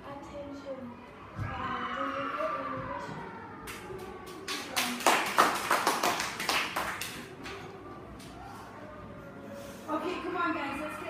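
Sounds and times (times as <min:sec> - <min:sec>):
small group clapping: 0:03.6 - 0:08.3.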